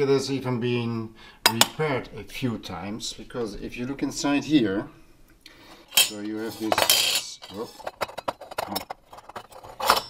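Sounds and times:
metal clicks and scrapes: 5.9 - 10.0
metal clink: 5.9 - 10.0.

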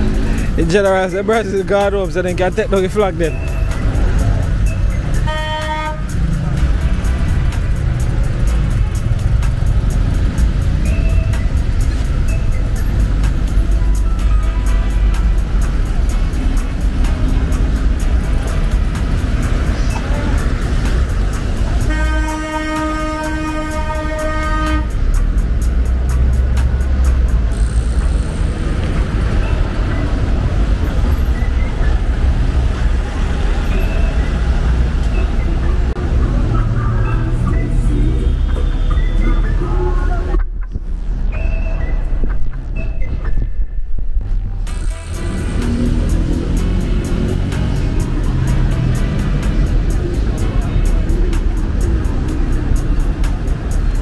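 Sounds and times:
traffic rumble: 0.0 - 54.0
car horn honking: 4.7 - 6.4, 21.8 - 25.0.

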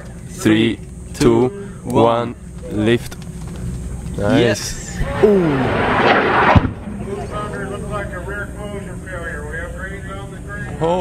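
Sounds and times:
rocket motor roaring: 4.5 - 8.6
sharp crack: 5.1 - 7.0.

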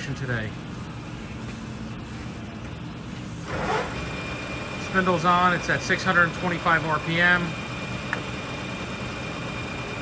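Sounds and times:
lathe spindle running: 0.0 - 10.0
low machine hum: 0.0 - 10.0.

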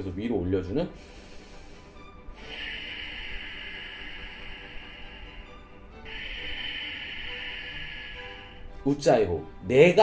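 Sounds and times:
hissing breath through throat: 0.9 - 8.9.

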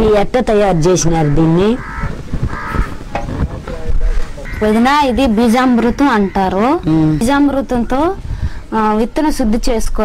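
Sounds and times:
crow cawing: 0.7 - 3.1, 4.4 - 7.5.

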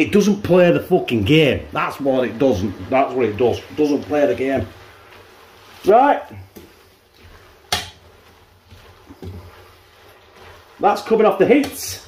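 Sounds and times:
spaghetti tossed in pan: 0.2 - 12.0.

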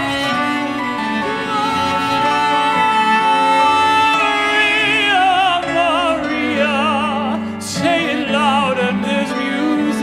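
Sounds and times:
cello and piano playing: 0.0 - 10.0.

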